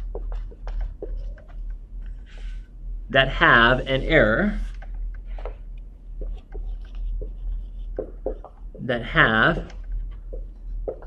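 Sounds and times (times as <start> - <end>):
marker writing on whiteboard: 0.0 - 1.6, 6.2 - 11.0
man speaking: 3.1 - 4.8, 8.8 - 9.8.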